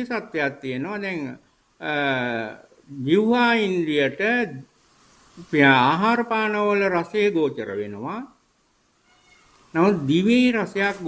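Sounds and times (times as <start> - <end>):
man talking: 0.0 - 4.7, 5.4 - 8.4, 9.7 - 11.0.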